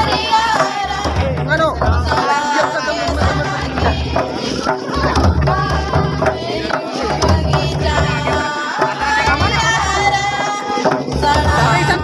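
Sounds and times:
hand drumming on barrel drum: 0.0s - 12.0s
voices singing: 0.0s - 12.0s.

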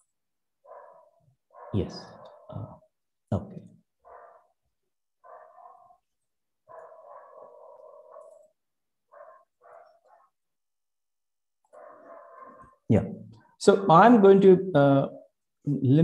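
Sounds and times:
dog barking and whining: 4.0s - 4.6s, 5.2s - 10.4s.

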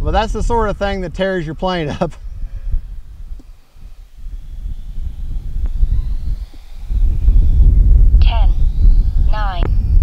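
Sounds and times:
model jet high whine: 0.0s - 10.0s
wind buffeting microphone: 0.0s - 10.0s.

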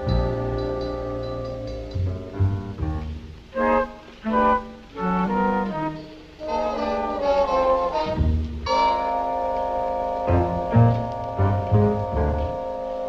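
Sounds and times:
orchestral brass and woodwinds: 0.0s - 13.0s.

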